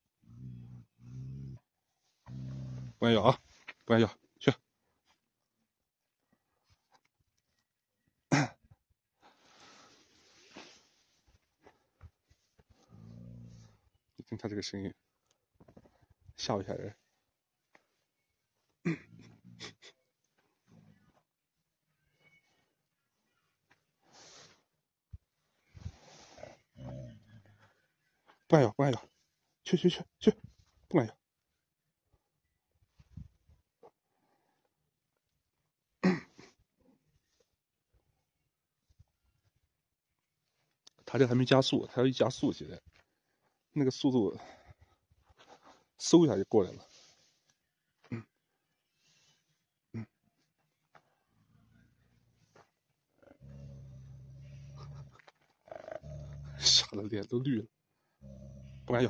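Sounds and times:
dog growling: 0:00.2 - 0:03.0, 0:12.8 - 0:13.8, 0:26.5 - 0:27.5, 0:53.2 - 0:57.0, 0:58.1 - 0:59.0.

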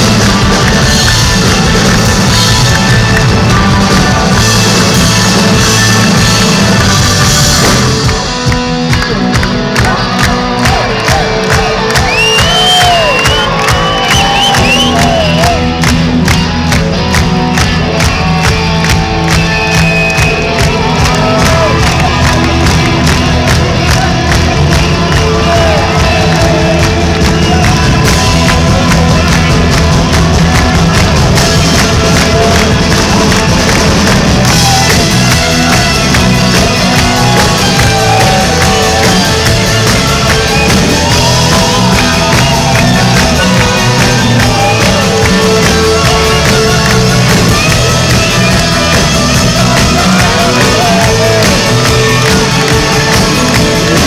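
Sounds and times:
crowd cheering: 0:00.0 - 0:54.0
live rock band playing: 0:00.0 - 0:54.0.

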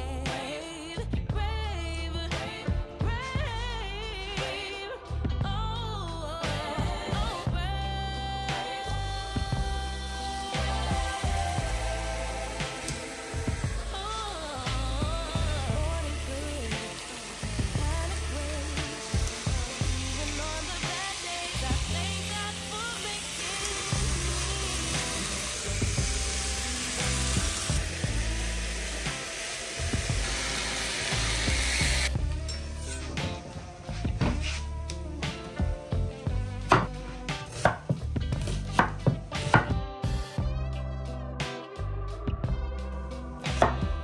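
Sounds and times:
background music with bass line: 0:00.0 - 0:44.0
food sizzling in a frying pan: 0:08.8 - 0:32.2
knife chopping on a board: 0:36.7 - 0:36.9, 0:37.6 - 0:38.0, 0:38.7 - 0:39.8.

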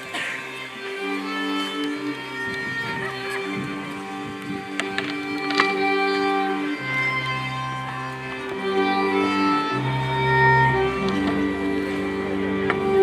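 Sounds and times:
folk string band playing: 0:00.0 - 0:13.0.

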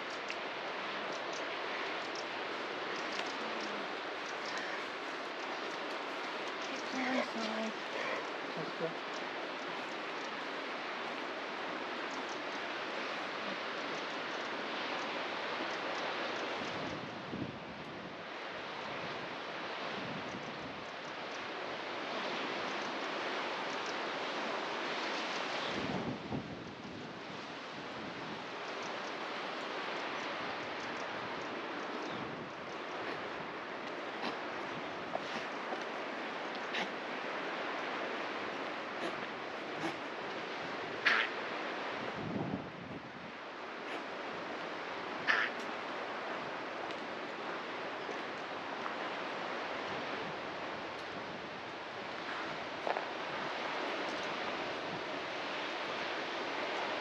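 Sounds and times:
steady wind: 0:00.0 - 0:57.0
wind rumbling on microphone: 0:00.0 - 0:57.0.

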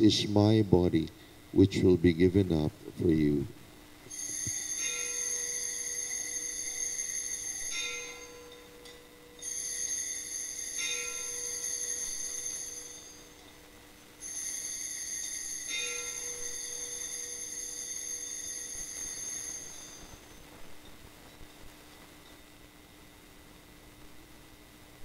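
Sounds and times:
altar bells ringing: 0:04.1 - 0:13.6, 0:14.2 - 0:21.0.

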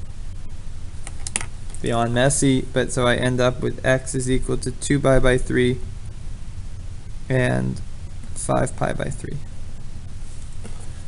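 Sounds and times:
low steady hum: 0:00.0 - 0:11.0
man speaking: 0:01.8 - 0:05.9, 0:07.3 - 0:07.8, 0:08.4 - 0:09.5.

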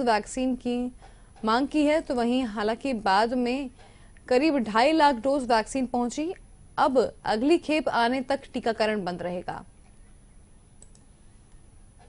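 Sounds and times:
faint background hiss: 0:00.0 - 0:12.0
soft clicks: 0:10.8 - 0:11.6.

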